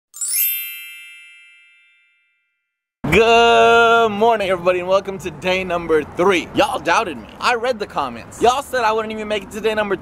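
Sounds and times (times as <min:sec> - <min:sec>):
bright chime: 0:00.1 - 0:02.8.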